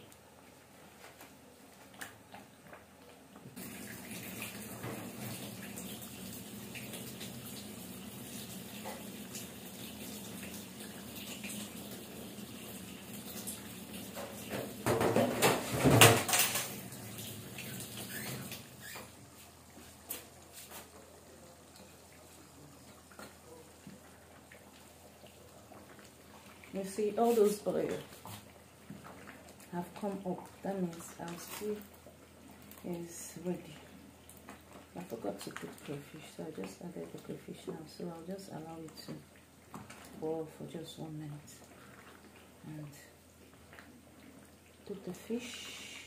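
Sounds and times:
kitchen tap running water: 3.6 - 46.0.

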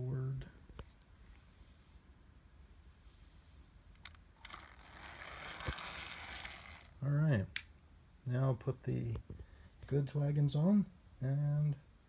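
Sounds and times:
small electric motor and gearing: 4.0 - 7.0
sharp clicks: 7.5 - 7.7.

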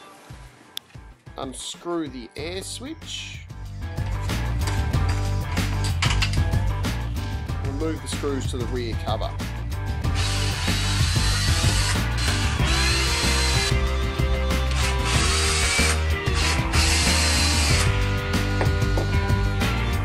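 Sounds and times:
cordless drill whining: 10.1 - 13.8, 14.4 - 19.6.

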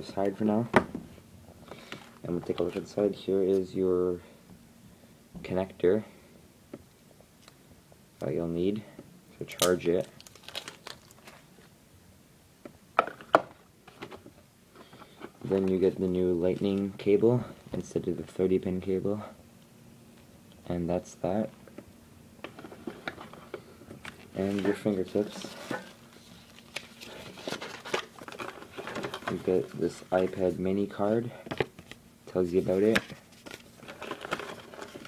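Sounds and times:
charger and packaging handled: 9.6 - 11.5, 22.4 - 30.5, 32.6 - 35.0.

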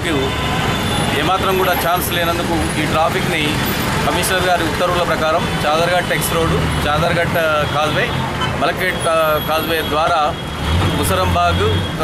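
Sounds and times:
road traffic: 0.0 - 12.0
man speaking: 1.2 - 10.4, 11.0 - 11.9.

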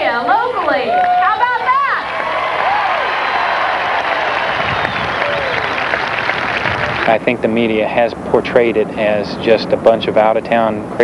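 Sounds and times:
voices calling out: 0.0 - 8.2
crowd applauding: 0.9 - 7.4.

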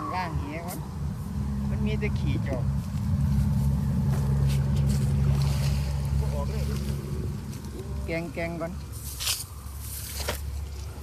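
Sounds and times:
engine droning: 0.0 - 11.0.

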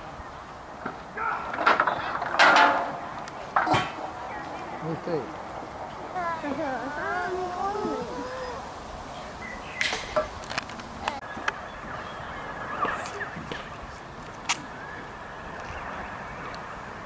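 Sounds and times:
faint background noise: 0.0 - 17.0.

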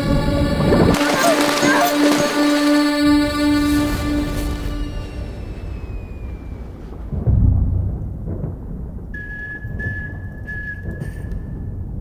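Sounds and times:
high steady tone: 1.0 - 7.0
deep rumbling boom: 3.3 - 12.0.

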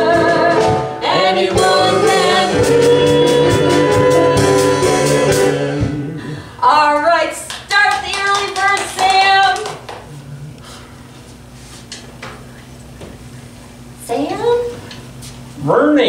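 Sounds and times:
musical song accompaniment: 0.0 - 6.2.

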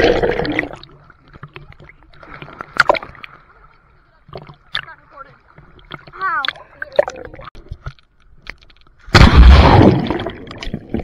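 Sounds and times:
water lapping and splashing: 0.0 - 11.0.

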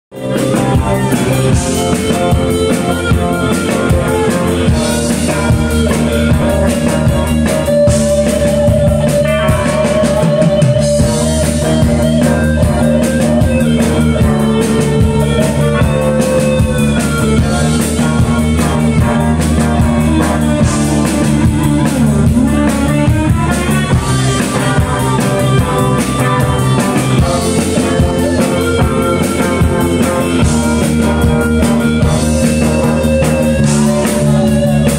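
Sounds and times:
bass guitar: 0.1 - 34.9
drum kit: 0.1 - 34.9
electric guitar lead notes: 0.1 - 34.9.

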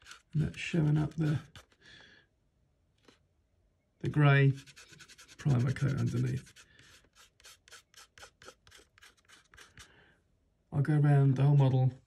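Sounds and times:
fingertip rubbing plastic: 0.0 - 1.8, 4.5 - 9.9.

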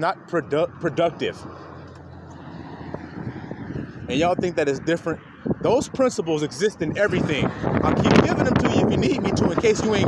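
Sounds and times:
outdoor background rumble: 0.0 - 10.0.

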